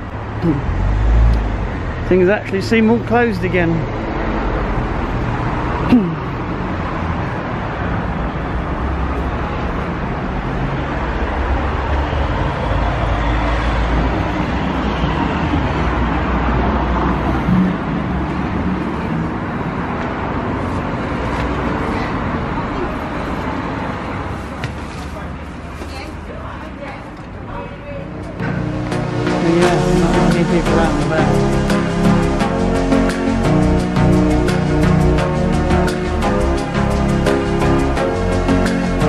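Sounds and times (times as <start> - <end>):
road vehicles rumbling: 0.0 - 39.0.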